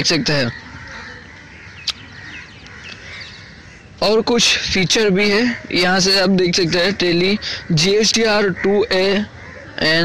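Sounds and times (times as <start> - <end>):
faint bird calls: 0.0 - 10.0.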